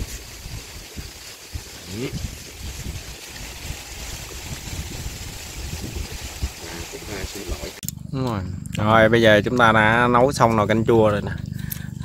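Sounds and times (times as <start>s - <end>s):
wood fire hissing and rumbling: 0.0s - 7.8s.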